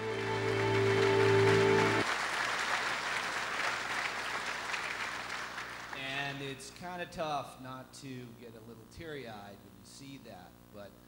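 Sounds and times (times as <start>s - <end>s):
held music chord: 0.0s - 2.0s
audience applauding: 0.0s - 6.3s.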